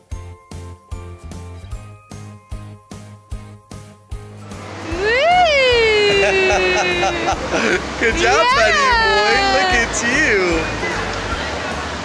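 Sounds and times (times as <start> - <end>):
person saying aww: 4.9 - 10.0.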